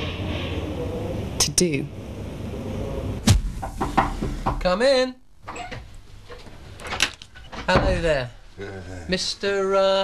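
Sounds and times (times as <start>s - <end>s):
loud thump: 3.2s - 4.7s.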